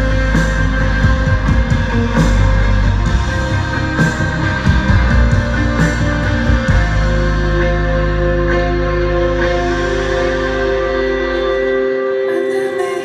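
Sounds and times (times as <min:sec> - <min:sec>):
drums: 0:00.0 - 0:13.0
electric guitar: 0:00.0 - 0:13.0.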